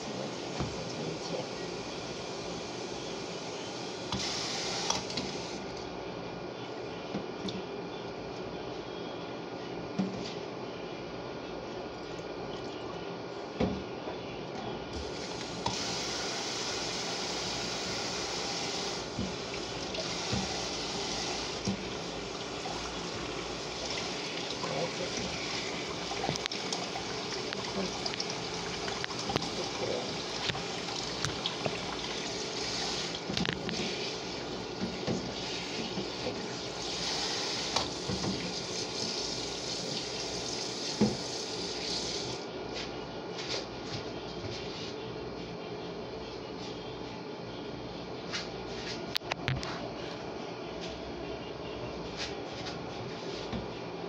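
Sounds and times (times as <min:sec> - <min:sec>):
faucet water running into sink: 0:15.1 - 0:34.4, 0:35.0 - 0:42.4.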